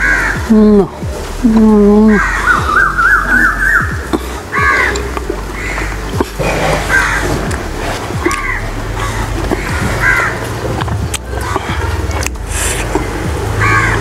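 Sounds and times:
crows cawing: 0.0 - 0.5, 2.1 - 6.0, 6.9 - 7.4, 8.2 - 10.6, 13.6 - 14.0.

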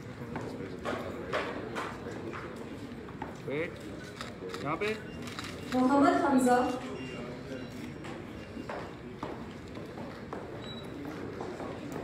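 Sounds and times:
murmur of voices: 0.0 - 12.0
footsteps on wooden stage floor: 8.1 - 12.0.

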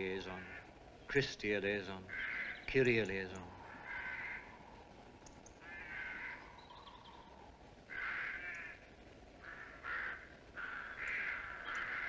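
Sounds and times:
crow cawing: 0.3 - 0.8, 2.1 - 2.7, 3.5 - 4.9, 5.6 - 12.0.

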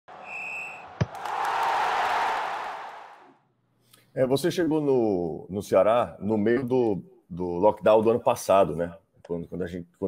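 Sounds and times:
high whistle tone: 0.1 - 0.9.

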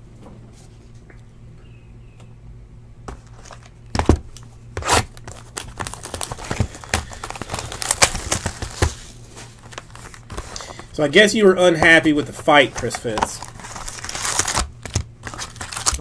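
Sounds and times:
plastic wrap crinkling: 3.2 - 16.0
plastic wrap snapping: 4.0 - 10.8, 12.8 - 16.0.

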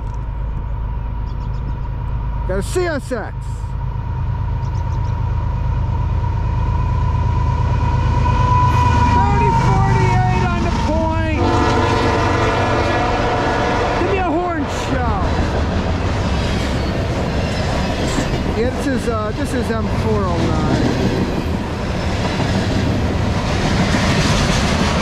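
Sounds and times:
diesel locomotive rumble: 0.0 - 25.0
thin high whine: 0.2 - 10.4
train wheels clattering on rails: 14.7 - 25.0.

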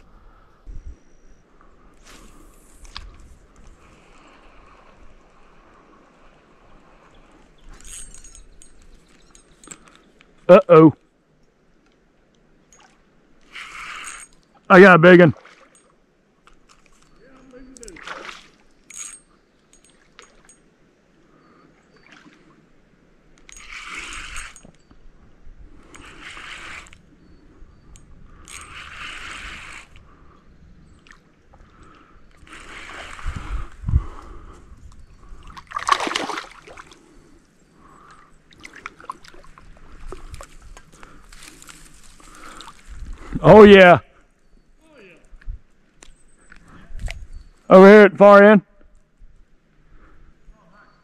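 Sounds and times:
fish splashing at water surface: 35.6 - 36.9.

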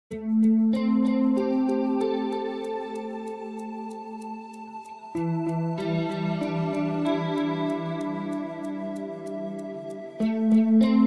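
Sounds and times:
ambient background music: 0.1 - 11.0.

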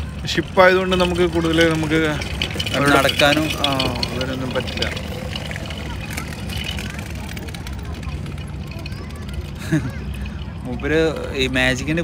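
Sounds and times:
boat engine rumble: 0.0 - 12.0.

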